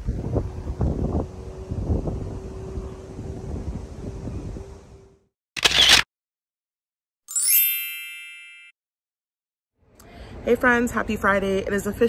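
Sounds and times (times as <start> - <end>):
bright chime ringing tones: 7.3 - 8.8.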